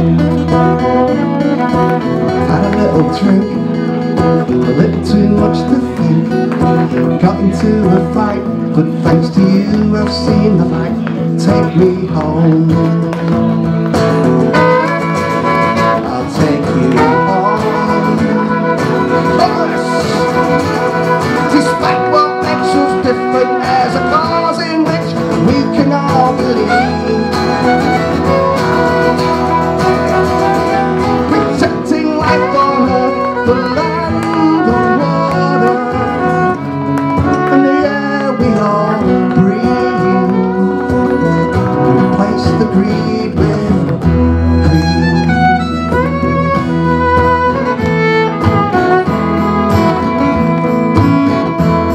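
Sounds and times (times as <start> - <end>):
acoustic guitars folk music: 0.0 - 51.9.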